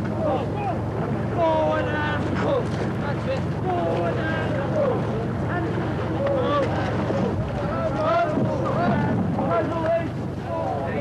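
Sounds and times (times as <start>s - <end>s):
men shouting over one another: 0.0s - 11.0s
steady low rumble: 0.0s - 11.0s.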